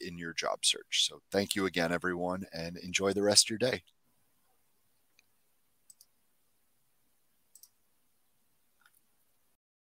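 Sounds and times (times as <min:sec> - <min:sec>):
computer mouse clicks: 0:05.9 - 0:06.1, 0:07.5 - 0:07.8.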